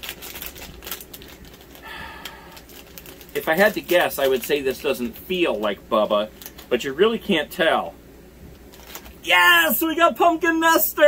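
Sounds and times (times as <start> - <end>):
foil packet crinkling: 0.0 - 7.3, 8.6 - 10.0.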